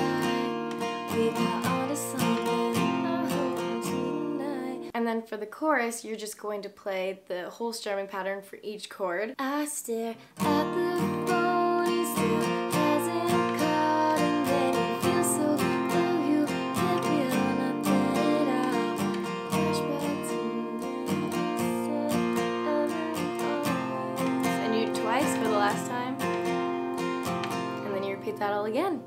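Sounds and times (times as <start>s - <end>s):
strummed acoustic guitar: 0.0s - 4.9s, 10.4s - 29.0s.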